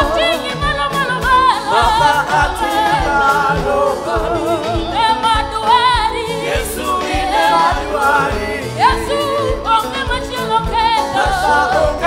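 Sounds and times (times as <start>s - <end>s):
bass line: 0.0s - 12.0s
drum beats: 0.0s - 12.0s
person singing with vibrato: 0.0s - 12.0s.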